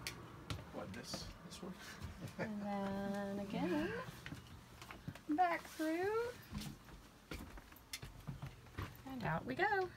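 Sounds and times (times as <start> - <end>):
footsteps: 0.0 - 9.9.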